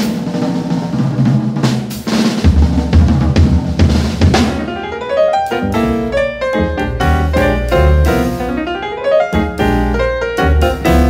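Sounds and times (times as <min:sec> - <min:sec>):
jazz drum kit: 0:00.0 - 0:11.0
piano run: 0:03.8 - 0:11.0.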